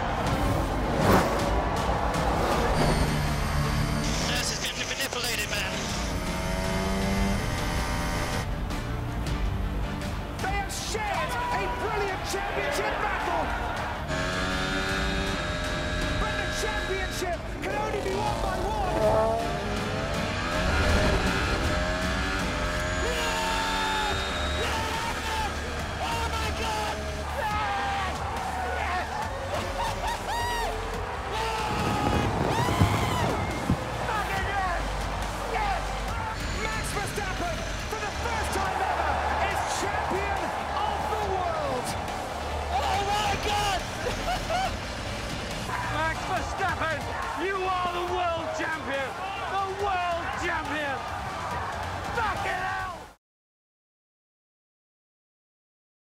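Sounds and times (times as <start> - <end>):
racing car engine at high revs: 0.2 - 8.5, 14.0 - 27.4
men shouting and screaming: 10.5 - 14.1, 16.2 - 53.2.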